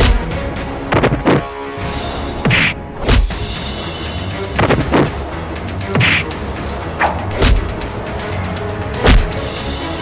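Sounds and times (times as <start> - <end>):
action background music: 0.0 - 10.0
punch and hit thuds: 9.0 - 9.4.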